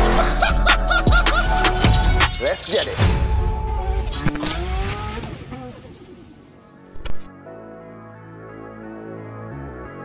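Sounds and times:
car engine revving: 3.7 - 6.8.

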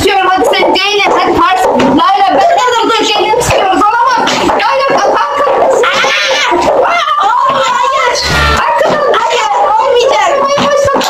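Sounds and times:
excited shouting and squealing: 0.0 - 11.0.

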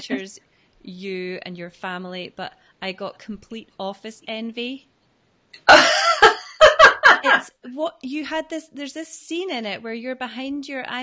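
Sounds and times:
women laughing loudly: 5.7 - 7.4.

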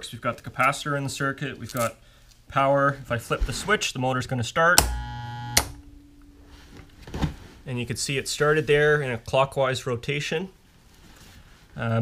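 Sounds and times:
blower motor hum: 4.8 - 5.8
contactor click: 4.8 - 5.8
loud electrical buzz: 4.8 - 6.1.

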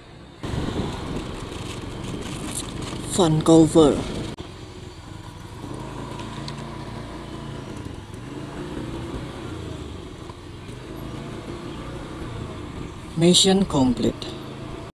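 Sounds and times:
motorcycle engine cruising: 0.0 - 14.9.

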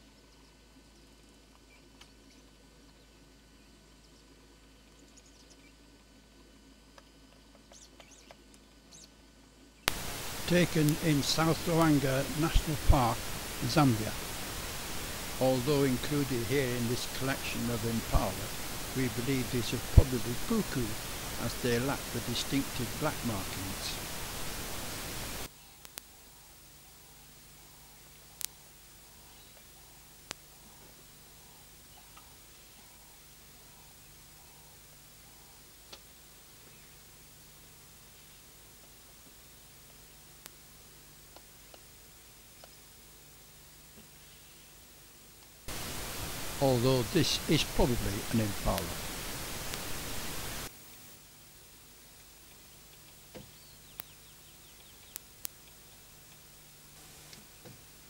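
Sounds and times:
faint steady hiss: 0.0 - 58.0
low steady hum: 0.0 - 58.0
faint ticks: 24.8 - 26.4, 27.6 - 36.2, 38.8 - 40.6, 52.2 - 56.5.

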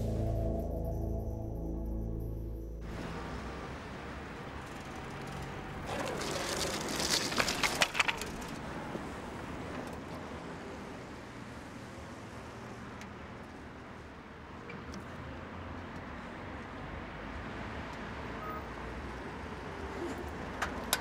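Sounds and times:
rain on wet street: 2.9 - 13.7.

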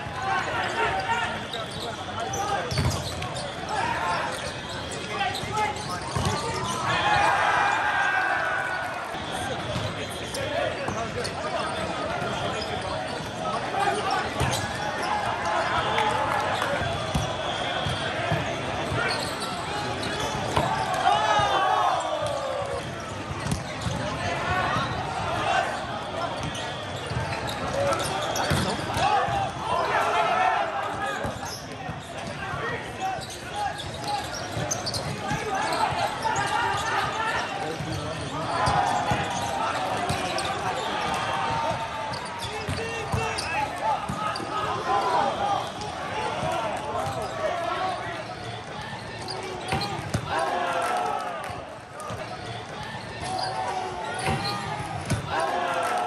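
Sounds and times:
players shouting calls: 0.0 - 56.0
volleyballs hit and bouncing: 2.5 - 3.7, 4.3 - 7.4, 10.8 - 29.7, 33.8 - 56.0.

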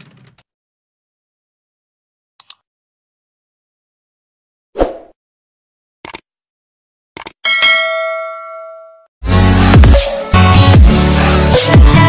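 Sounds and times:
mouse double click: 2.4 - 2.6
notification bell ding: 7.5 - 9.1.

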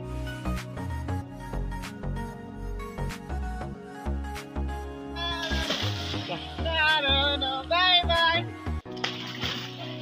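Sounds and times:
background music with pulsing bass: 0.0 - 10.0
water splashing from swimmer: 5.4 - 6.5.

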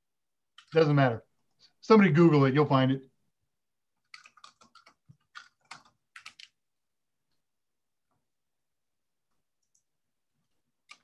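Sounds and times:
computer keyboard keystrokes: 4.0 - 6.6.

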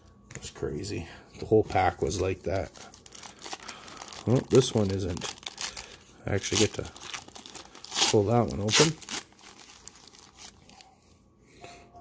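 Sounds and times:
plastic wrapper crinkling: 1.5 - 10.9.

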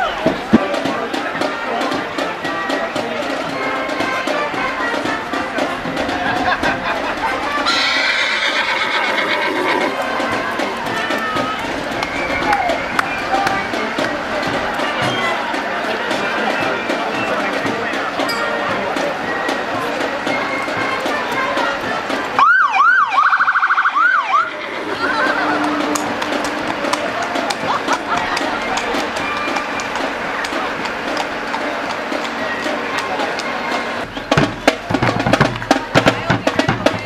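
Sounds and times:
crowd chatter: 0.0 - 37.0
street noise: 0.0 - 37.0
horse whinnying: 7.6 - 10.0, 24.4 - 25.8
electronic siren whooping and yelping: 22.4 - 24.6.

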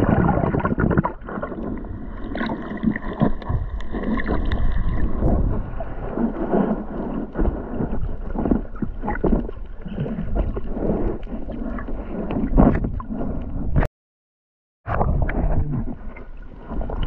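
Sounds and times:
underwater rumbling and gurgling: 0.0 - 13.9, 14.8 - 17.0.

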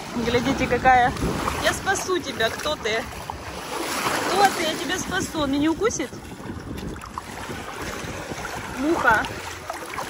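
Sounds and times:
water lapping at shore: 0.0 - 10.0
wind on microphone: 0.0 - 10.0.

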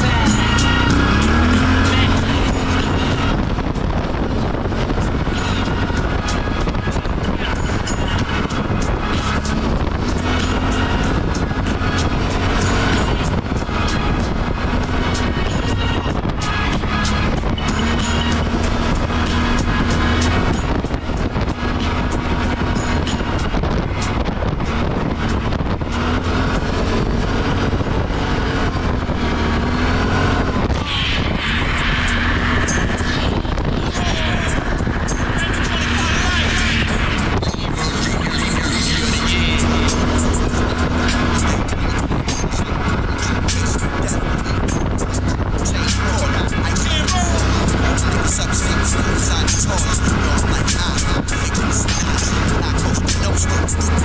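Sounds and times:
atv engine running: 0.0 - 54.0
rap music with vocals: 0.0 - 54.0.

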